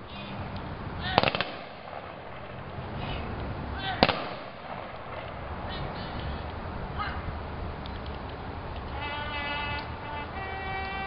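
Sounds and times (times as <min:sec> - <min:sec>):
rifle volleys: 0:01.2 - 0:02.6
shouted command: 0:03.0 - 0:04.2, 0:05.7 - 0:07.3.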